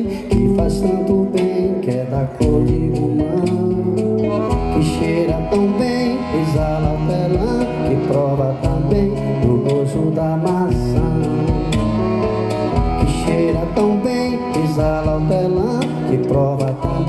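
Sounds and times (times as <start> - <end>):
accordion melody: 0.0 - 17.0
hand drum beat: 0.0 - 17.0.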